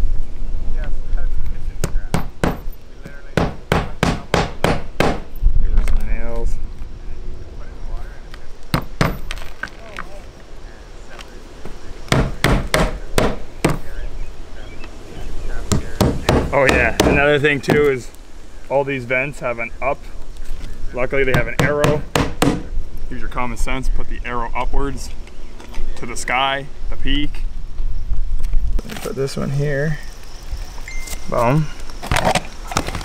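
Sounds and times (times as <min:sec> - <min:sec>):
hammer striking nails: 0:01.8 - 0:02.7, 0:03.4 - 0:05.3, 0:08.7 - 0:09.4, 0:12.1 - 0:13.8, 0:15.7 - 0:17.8, 0:21.3 - 0:22.7.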